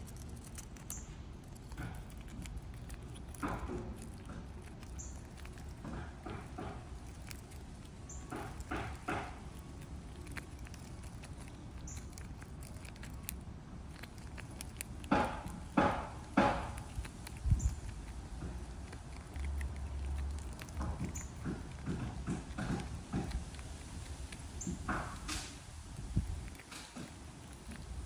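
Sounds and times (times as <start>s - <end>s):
scratchy scrapes on peanut shell: 0.0s - 28.0s.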